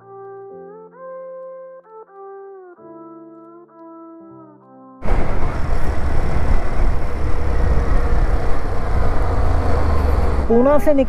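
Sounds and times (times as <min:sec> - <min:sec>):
motorcycle engine: 0:05.0 - 0:10.6
road noise: 0:05.0 - 0:11.0
wind buffeting microphone: 0:05.0 - 0:11.0.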